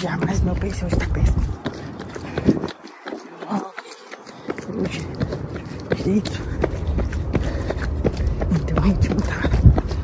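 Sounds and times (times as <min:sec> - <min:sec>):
footsteps on pavement: 0:00.0 - 0:10.0
person breathing heavily: 0:01.6 - 0:08.5.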